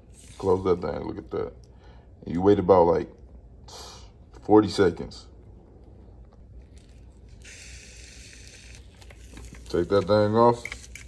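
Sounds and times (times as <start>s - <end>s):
egg sizzling in waffle maker: 7.4s - 11.0s.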